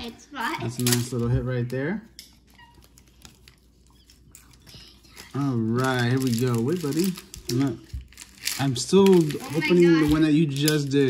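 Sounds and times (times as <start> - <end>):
trading cards rustling and clicking: 0.7 - 11.0.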